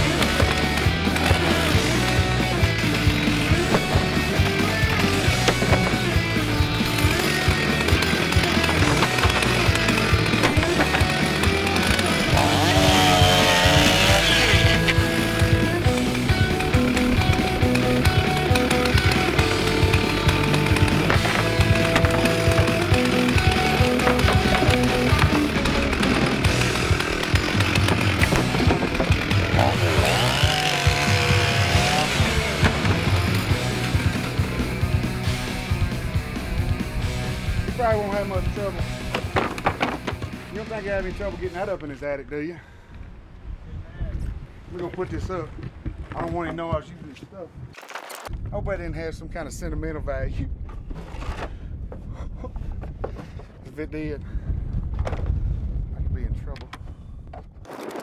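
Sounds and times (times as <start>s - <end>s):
chainsaw revving and cutting wood: 0.0s - 41.7s
music playing: 0.0s - 41.7s.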